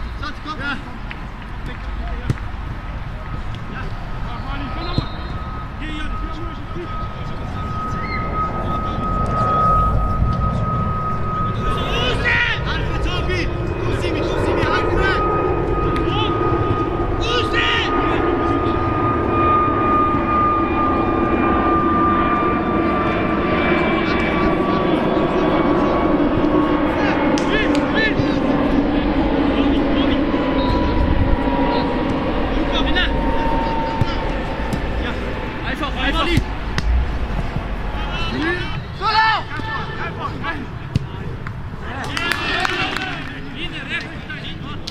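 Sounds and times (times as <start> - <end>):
low drone and rumble: 0.0 - 41.8
players shouting: 15.9 - 18.9, 31.8 - 44.9.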